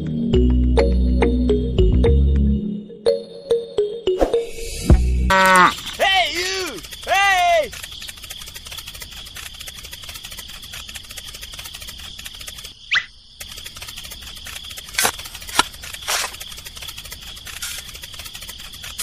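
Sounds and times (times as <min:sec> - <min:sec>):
high-pitched chirring with ticking: 0:05.3 - 0:19.0.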